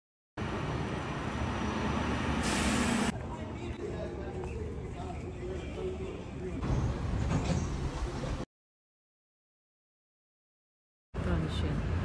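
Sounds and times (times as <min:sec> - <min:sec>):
city street traffic: 0:00.4 - 0:08.4, 0:11.2 - 0:12.0.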